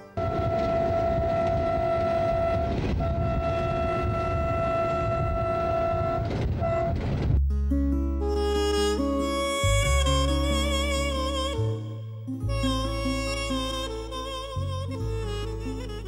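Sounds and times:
locomotive horn blasts: 0.0s - 7.3s
train rumbling past: 0.2s - 7.4s
instrumental music: 6.5s - 16.0s.

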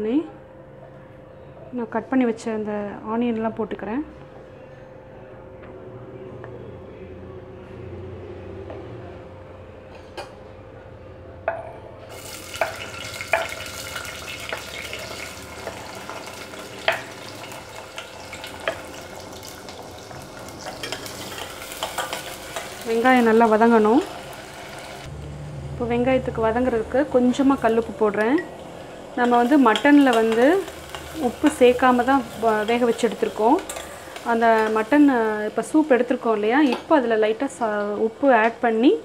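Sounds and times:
shallots sizzling in oil: 12.1s - 25.1s, 27.3s - 38.0s.

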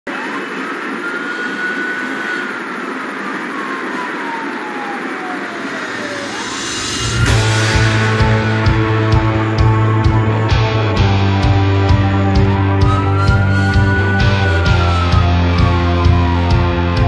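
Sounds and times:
siren wail: 0.1s - 17.0s
rock band with bass and drums: 6.5s - 17.0s.

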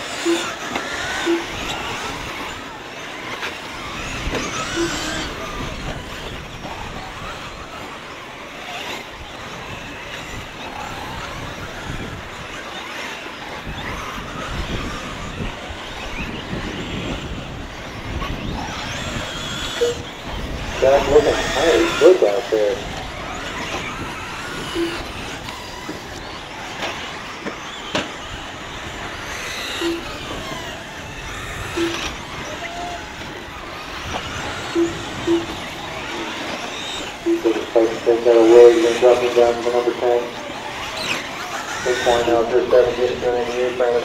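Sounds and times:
faint voices: 0.0s - 44.0s
rc car motor whine: 0.0s - 44.0s.

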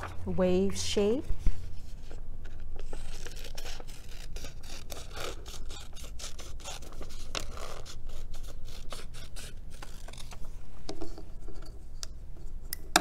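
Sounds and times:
scissors snipping paper: 2.8s - 10.4s.

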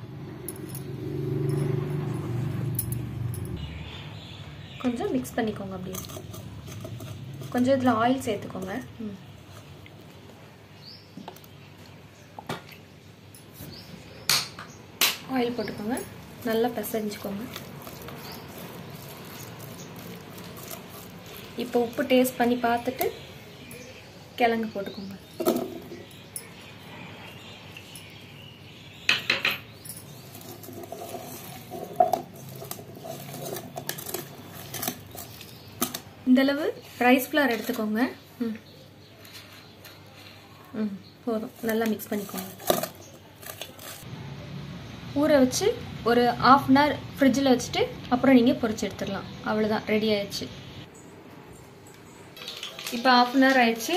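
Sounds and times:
food rustling in steel bowl: 5.8s - 9.8s, 15.7s - 23.3s, 30.0s - 36.2s, 41.4s - 44.1s
fingers squishing paste in steel bowl: 15.7s - 23.3s.

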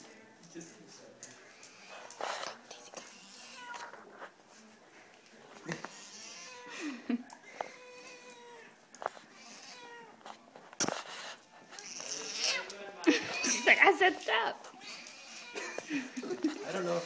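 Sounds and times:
cat meowing and yowling: 9.5s - 10.2s, 14.8s - 15.8s.

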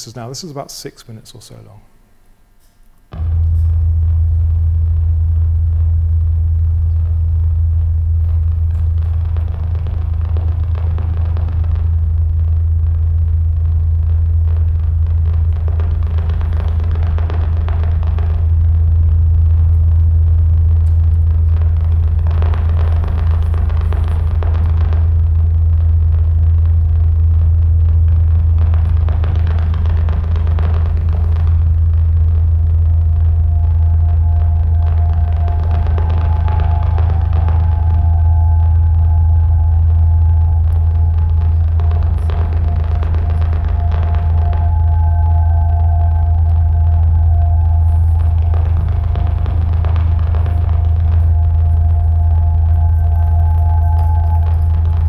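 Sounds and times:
electroacoustic drone over loudspeakers: 0.0s - 55.0s.

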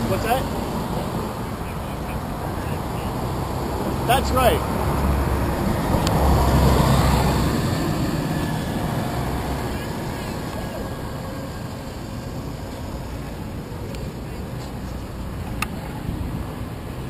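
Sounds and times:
bus diesel engine passing: 0.0s - 17.0s
street traffic noise: 0.0s - 17.0s.

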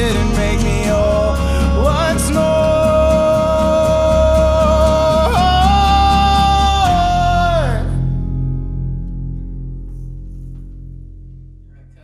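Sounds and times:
guitar chord ringing: 0.0s - 12.0s.

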